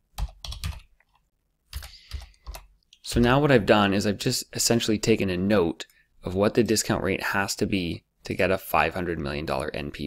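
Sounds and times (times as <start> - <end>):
computer keyboard keystrokes: 0.2 - 2.7.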